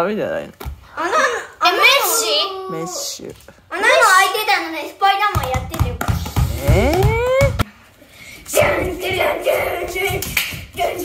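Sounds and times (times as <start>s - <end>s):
children's voices: 1.0s - 6.0s
bare feet thudding on floor: 5.4s - 7.6s
child whooping: 6.8s - 7.6s.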